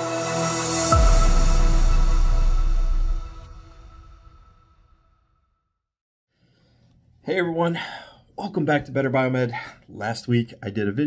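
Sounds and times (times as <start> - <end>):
intro music: 0.0 - 5.1.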